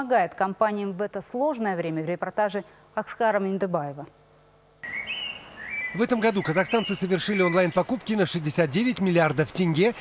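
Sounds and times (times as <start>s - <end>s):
outdoor background noise: 0.0s - 10.0s
whistled bird chirps: 4.8s - 8.0s.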